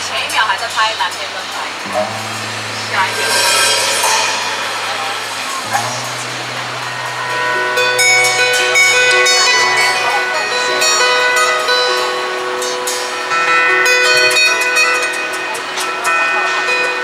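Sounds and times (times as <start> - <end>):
plucked ringing notes: 1.8 - 7.8
held low note: 1.8 - 7.9.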